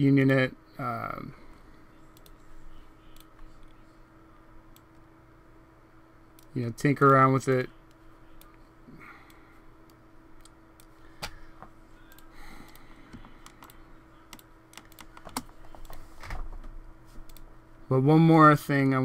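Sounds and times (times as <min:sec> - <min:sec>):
faint steady hum: 0:00.0 - 0:19.0
keyboard and mouse clicks: 0:12.1 - 0:16.0.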